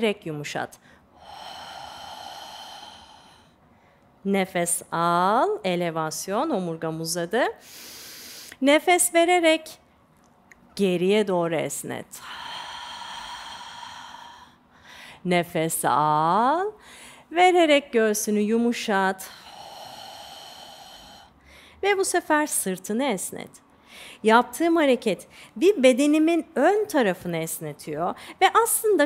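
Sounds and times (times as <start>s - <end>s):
woman exhaling: 1.2s - 3.6s, 12.2s - 15.2s, 19.2s - 21.7s.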